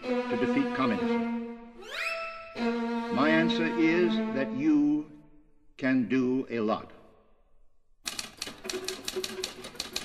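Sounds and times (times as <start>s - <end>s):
typewriter keys clattering: 8.1s - 10.0s.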